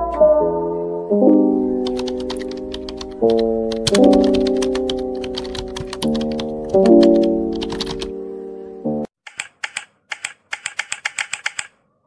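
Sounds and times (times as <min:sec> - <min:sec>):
computer keyboard keystrokes: 0:01.8 - 0:08.1, 0:09.2 - 0:11.8.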